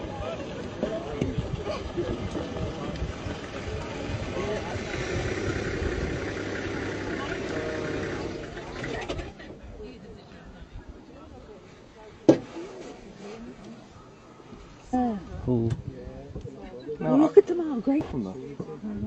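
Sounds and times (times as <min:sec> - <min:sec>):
vehicle engine idling: 0:00.0 - 0:09.4.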